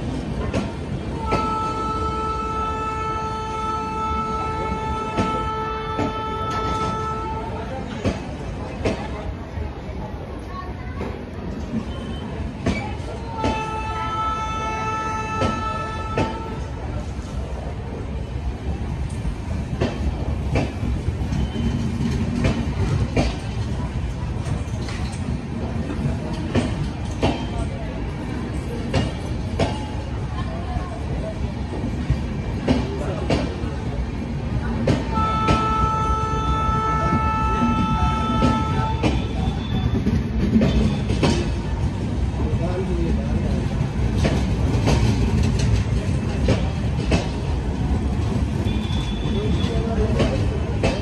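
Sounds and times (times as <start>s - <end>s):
train coaches rolling on rails: 0.0s - 51.0s
train horn: 1.2s - 7.7s, 13.4s - 16.8s, 35.1s - 40.0s
wheels clacking over rail joints: 19.1s - 27.8s, 43.6s - 51.0s.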